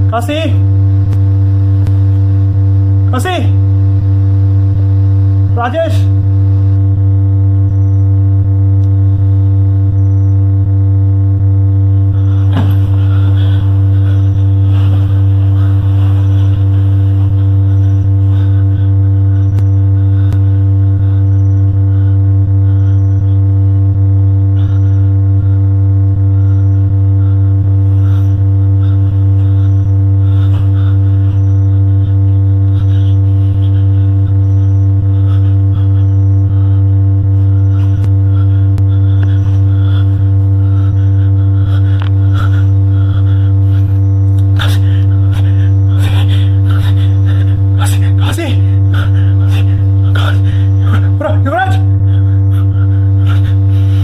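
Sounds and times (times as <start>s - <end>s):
low droning hum: 0.0s - 54.0s.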